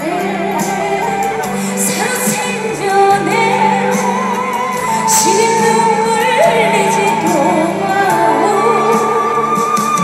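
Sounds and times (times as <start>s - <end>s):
accompanying music: 0.0s - 10.0s
woman singing into a microphone: 0.0s - 10.0s.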